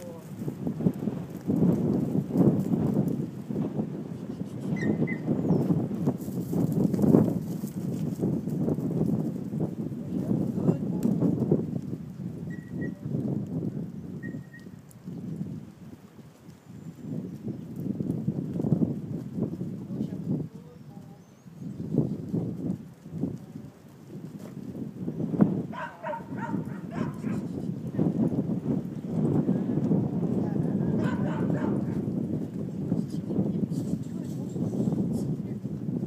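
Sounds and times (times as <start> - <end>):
goat hooves trampling on dirt: 0.0 - 3.5, 4.2 - 20.5, 22.0 - 32.7.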